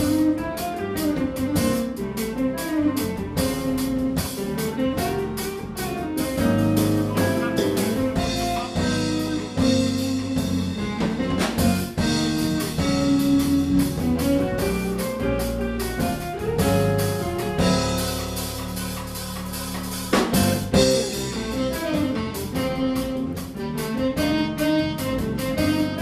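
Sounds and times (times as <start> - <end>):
drum kit steady beat: 0.0 - 26.0
electric bass guitar: 0.0 - 26.0
electric keyboard: 0.0 - 26.0.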